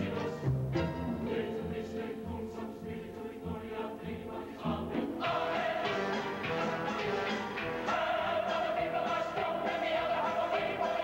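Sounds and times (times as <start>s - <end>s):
choir singing: 0.0s - 11.0s
instrumental accompaniment: 0.0s - 11.0s.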